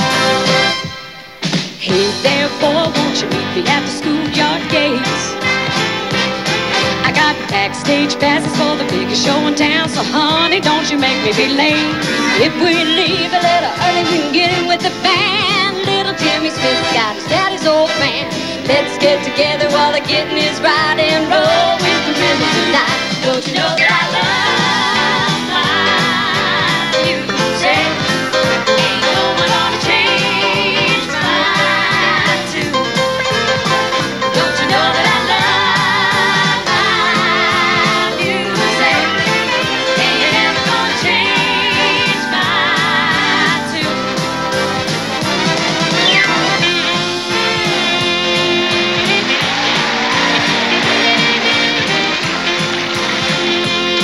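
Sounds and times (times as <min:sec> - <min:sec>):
live band playing country-pop: 0:00.0 - 0:54.0
steady drum beat: 0:00.0 - 0:54.0
saxophone: 0:02.2 - 0:54.0.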